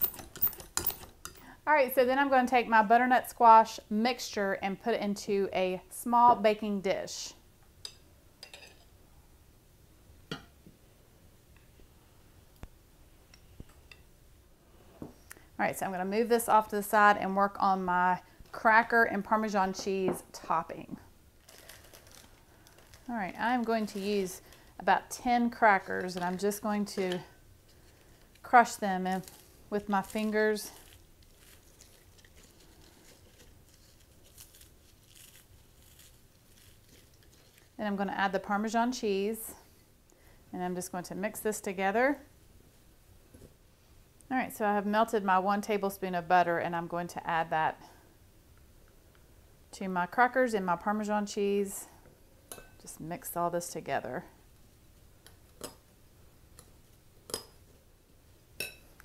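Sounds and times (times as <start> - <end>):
crackers being crushed: 21.4 - 23.1, 29.1 - 37.8.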